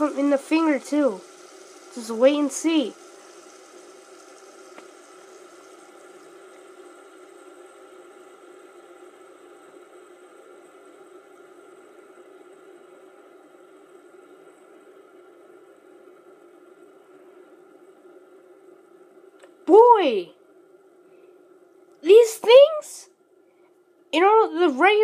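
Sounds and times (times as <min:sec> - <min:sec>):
fidget spinners whirring: 0:00.0 - 0:23.4, 0:24.2 - 0:25.0.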